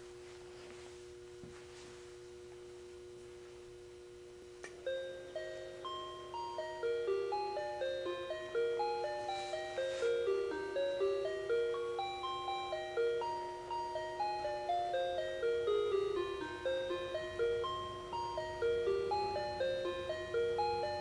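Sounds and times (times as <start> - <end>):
steady hum: 0.0 - 21.0
bell-like electronic melody: 4.8 - 21.0.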